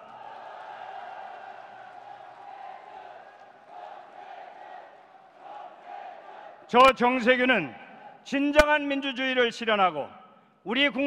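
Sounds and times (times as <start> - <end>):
crowd cheering: 0.0 - 8.3.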